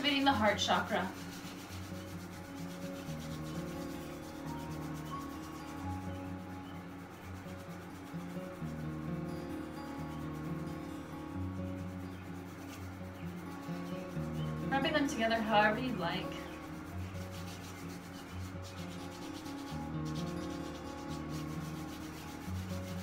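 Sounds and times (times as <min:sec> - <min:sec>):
hands rubbing together: 0:00.0 - 0:09.1, 0:11.8 - 0:15.0, 0:15.8 - 0:23.0
soft music of low chords: 0:00.0 - 0:23.0.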